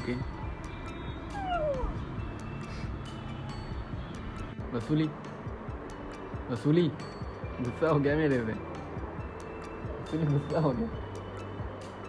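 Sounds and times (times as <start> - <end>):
background music: 0.0 - 12.0
cat meowing: 1.3 - 2.0.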